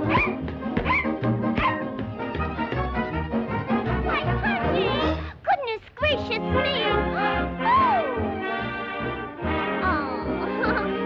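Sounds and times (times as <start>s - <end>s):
cartoon puppy yelping: 0.0s - 1.9s, 7.2s - 8.2s
brisk orchestral music: 0.0s - 5.3s, 6.0s - 11.0s.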